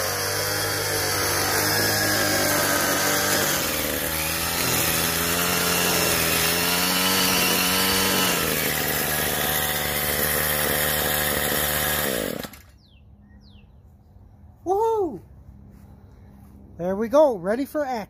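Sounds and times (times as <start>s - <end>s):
string trimmer engine revving: 0.0s - 12.8s.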